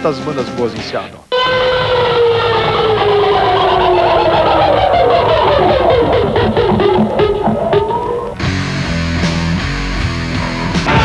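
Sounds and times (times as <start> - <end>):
long held note sliding down: 1.3 - 8.4
rock music with electric guitar: 1.3 - 11.0.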